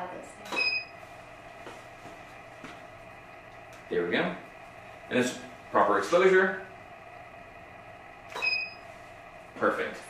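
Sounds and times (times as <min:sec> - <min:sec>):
flash high-pitched beep: 0:00.5 - 0:01.0, 0:08.3 - 0:08.8.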